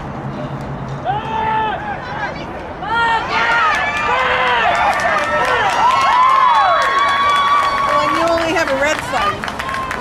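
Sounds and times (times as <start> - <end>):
voices shouting and yelling: 1.0 - 10.0.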